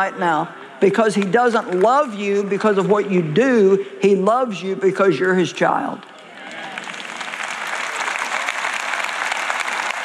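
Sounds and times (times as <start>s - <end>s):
audience applauding: 6.2s - 10.0s.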